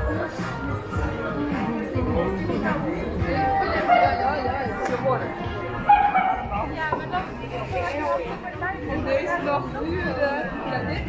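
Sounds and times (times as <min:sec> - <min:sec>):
music playing: 0:00.0 - 0:11.0
passers-by talking: 0:00.0 - 0:11.0.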